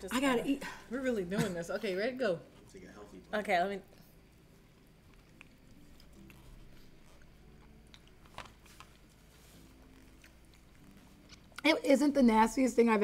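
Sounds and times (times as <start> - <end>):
people chewing: 3.9 - 11.7.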